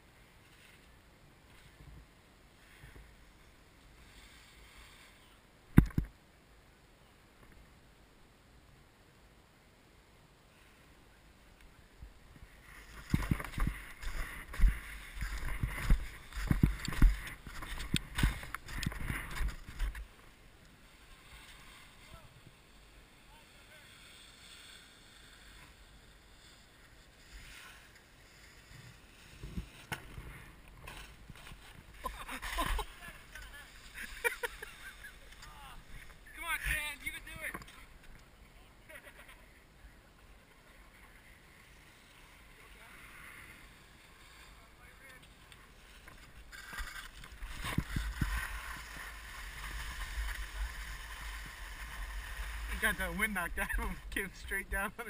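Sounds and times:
skis scraping over packed snow: 0.0 - 5.4, 10.5 - 55.0
person speaking: 52.7 - 55.0.

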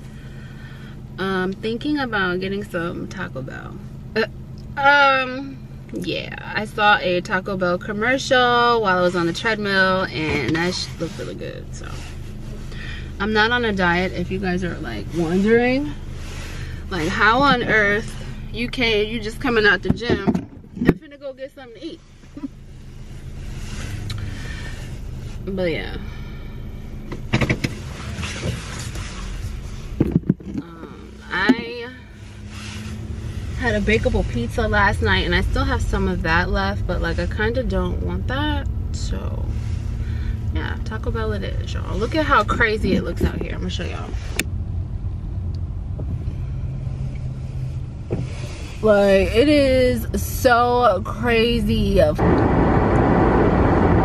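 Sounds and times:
car cabin hum and rushing: 0.0 - 54.0
woman speaking: 1.2 - 12.0, 12.8 - 16.0, 16.9 - 22.5, 25.4 - 26.1, 30.5 - 32.1, 33.6 - 39.6, 40.5 - 44.2, 48.8 - 52.4.

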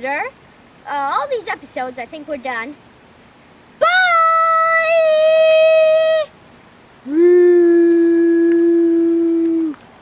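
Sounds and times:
voices singing long notes: 7.0 - 9.8.

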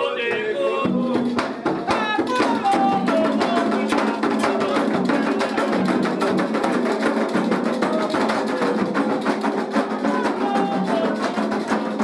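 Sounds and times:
hand drums playing: 0.0 - 12.0.

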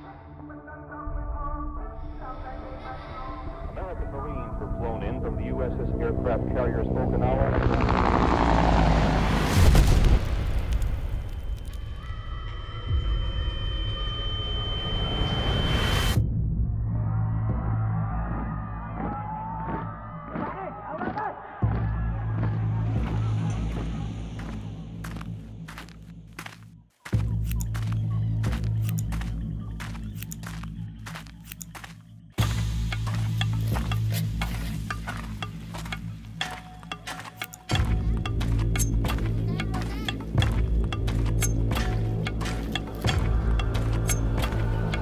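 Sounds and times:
deep bass drone: 4.0 - 11.6, 27.2 - 45.0.

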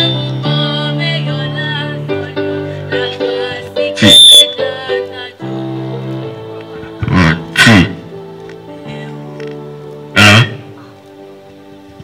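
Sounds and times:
girl singing into a microphone: 0.0 - 5.7
electric keyboard chords: 0.0 - 12.0.

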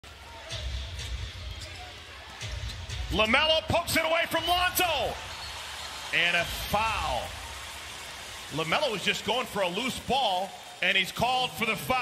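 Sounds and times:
faint arena noise: 0.0 - 12.0.

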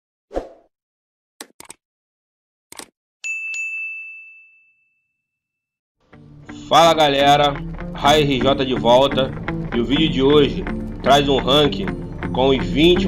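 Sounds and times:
quick sharp clicks: 2.7 - 2.9
bright ringing ding: 3.2 - 5.2.

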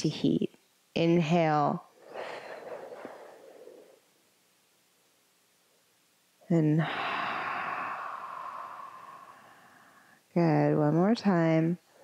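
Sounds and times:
long breathy exhale: 2.0 - 4.0, 6.8 - 10.2.

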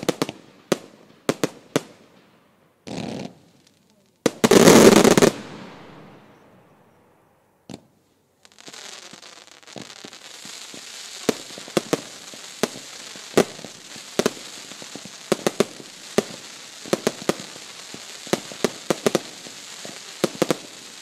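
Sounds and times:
fireworks bangs: 0.0 - 21.0
fireworks crackling hiss: 0.0 - 21.0.

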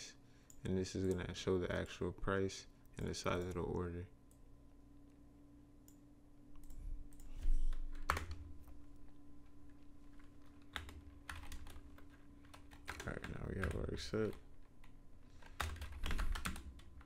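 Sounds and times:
typing on computer keyboard: 6.6 - 8.8, 10.1 - 14.4, 15.4 - 17.0.

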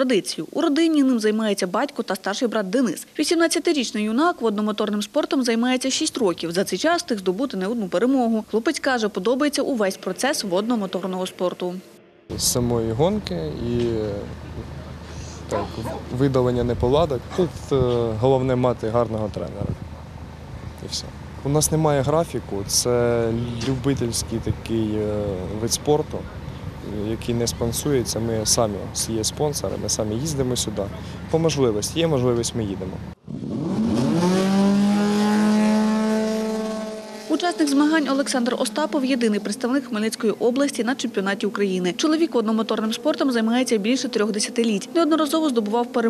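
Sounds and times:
steady low hum: 9.9 - 33.2
man speaking: 12.3 - 19.8, 20.8 - 33.1
powerboat engine at speed: 12.3 - 40.6.

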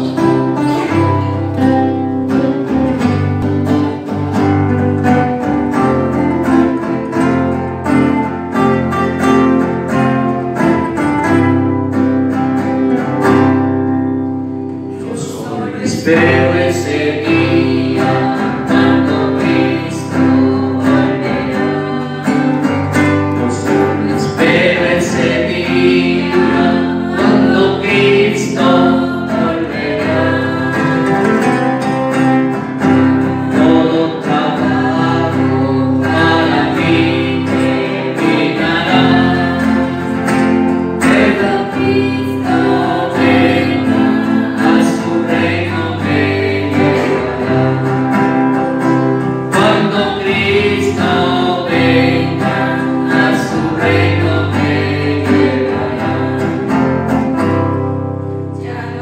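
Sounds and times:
voices singing a hymn: 0.0 - 3.3, 14.8 - 59.0
strummed acoustic guitars: 0.0 - 59.0.

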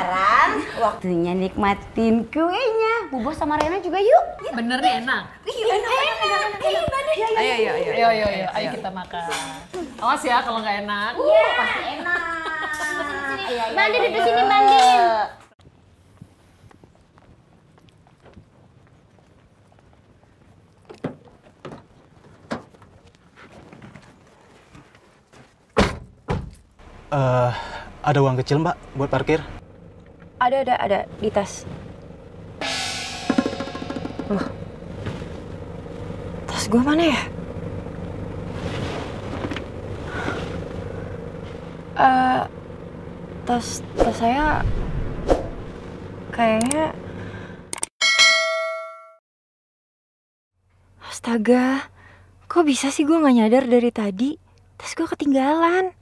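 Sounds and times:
light knocks and steps: 15.6 - 26.8
bright metallic clang: 32.6 - 34.9, 48.0 - 49.2.

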